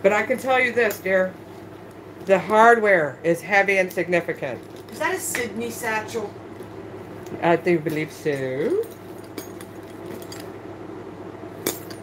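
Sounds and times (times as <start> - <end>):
metal hardware clinking: 7.8 - 10.5.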